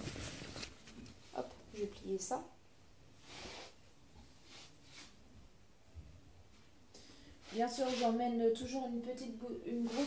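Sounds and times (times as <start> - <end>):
cloth garment rustling: 9.8 - 10.0.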